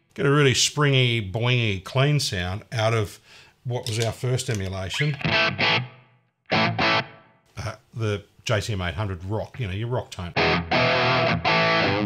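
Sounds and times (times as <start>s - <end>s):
electric guitar chord stabs: 10.4s - 12.0s.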